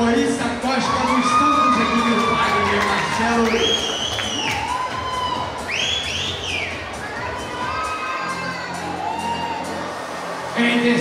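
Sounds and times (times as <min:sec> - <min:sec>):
audience cheering and screaming: 0:00.6 - 0:11.0.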